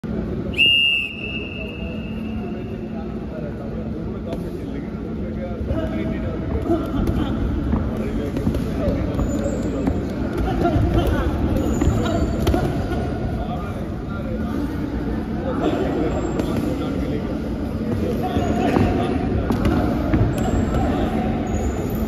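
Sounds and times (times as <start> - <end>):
voices in a hall: 0.0 - 22.0
whistle blowing: 0.5 - 2.5.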